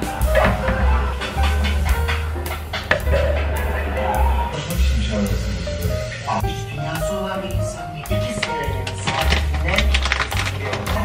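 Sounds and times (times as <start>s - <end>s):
music with heavy bass and drums: 0.0s - 11.0s.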